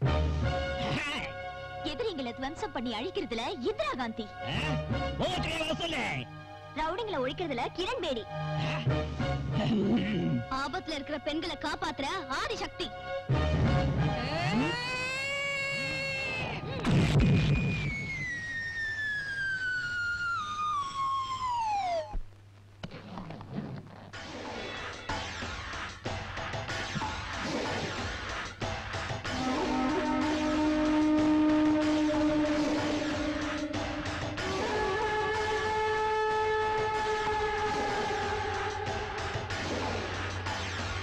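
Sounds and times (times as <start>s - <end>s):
descending whistle tone: 17.3s - 22.1s
long held score note: 29.4s - 37.7s.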